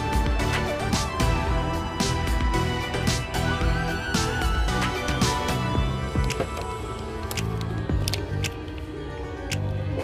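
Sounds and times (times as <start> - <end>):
background music with percussion: 0.0 - 6.7.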